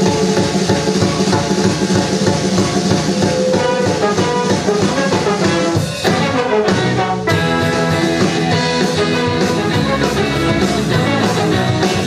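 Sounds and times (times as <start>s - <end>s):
live band playing: 0.0s - 12.0s
trumpet and trombone: 1.0s - 12.0s.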